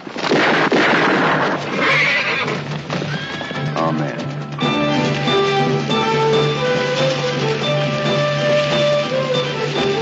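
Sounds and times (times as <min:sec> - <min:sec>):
horse neighing loudly: 0:01.7 - 0:03.8.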